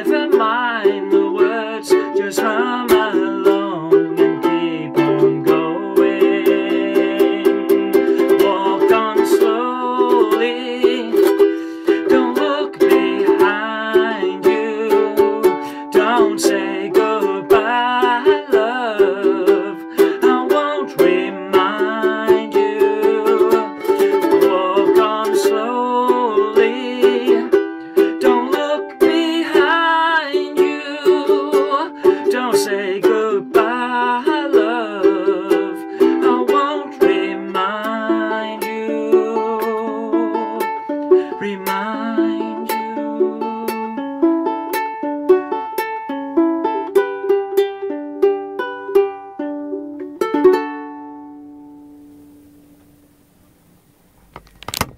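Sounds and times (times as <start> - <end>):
ukulele melody with chords: 0.0 - 53.5.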